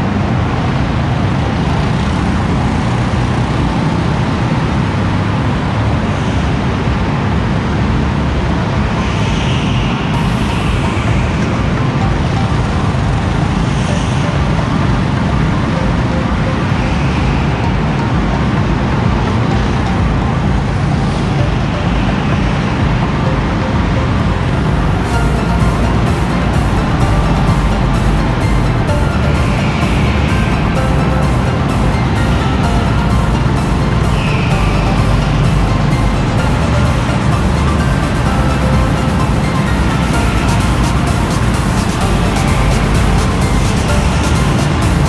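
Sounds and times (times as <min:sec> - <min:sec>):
go-kart engines running: 0:00.0 - 0:45.0
music with steady beat: 0:08.3 - 0:45.0.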